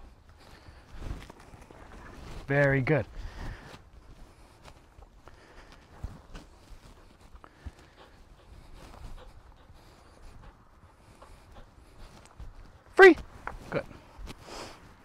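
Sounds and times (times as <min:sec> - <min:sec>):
footsteps on grass: 0:00.0 - 0:15.0.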